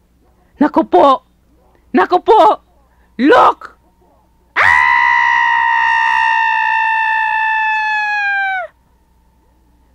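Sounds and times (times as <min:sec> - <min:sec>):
long high-pitched shriek: 0:04.6 - 0:08.8.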